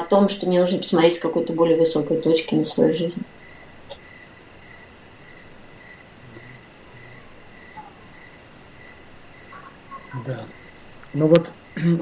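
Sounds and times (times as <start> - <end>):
faint high-pitched insect chirping: 0.0 - 12.0.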